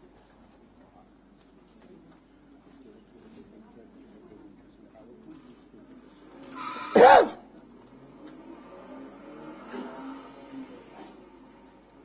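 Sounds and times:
loud pitched call: 6.6s - 7.4s.

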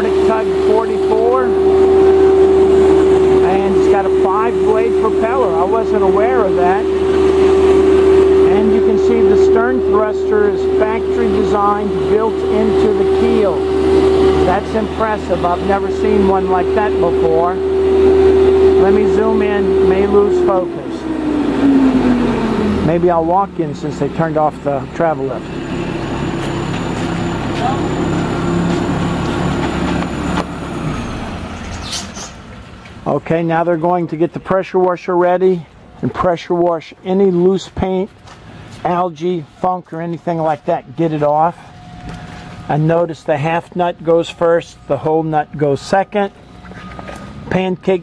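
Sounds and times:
constant whine: 0.0s - 48.0s
engine drone: 0.0s - 48.0s.

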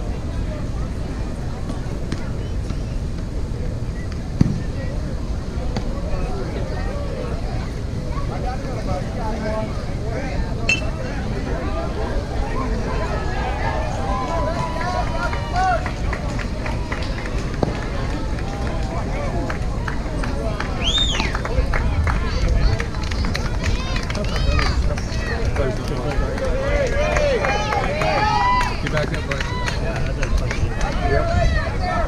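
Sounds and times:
steady low rumble: 0.0s - 26.8s
people calling out and chattering: 0.0s - 32.0s.

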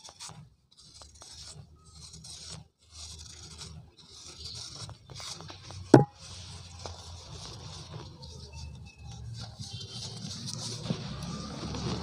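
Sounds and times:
knife scraping cement: 0.0s - 6.9s.

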